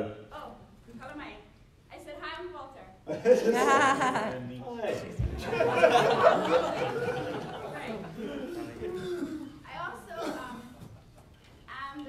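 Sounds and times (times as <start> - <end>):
people laughing: 3.1 - 9.5.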